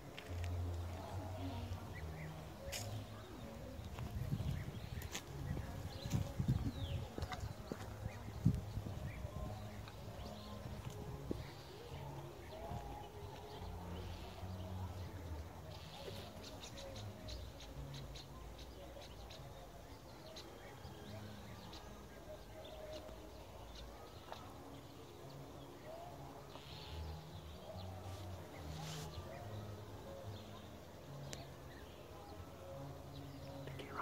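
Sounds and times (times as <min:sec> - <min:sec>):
microphone rumbling: 0:03.8 - 0:11.5.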